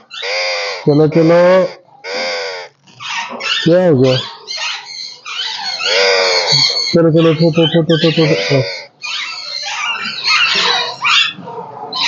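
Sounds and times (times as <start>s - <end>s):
parakeet squawking: 0.0s - 12.0s.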